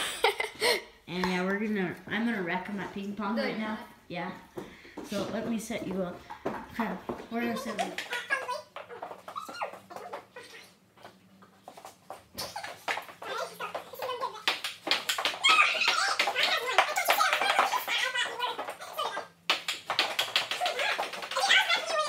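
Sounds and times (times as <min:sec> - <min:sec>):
loud high cries: 0:15.4 - 0:16.2.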